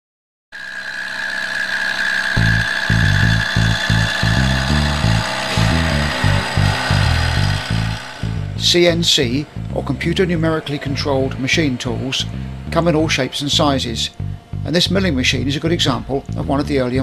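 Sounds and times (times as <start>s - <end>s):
milling machine high whine: 0.6s - 17.0s
background music with bass line: 2.4s - 17.0s.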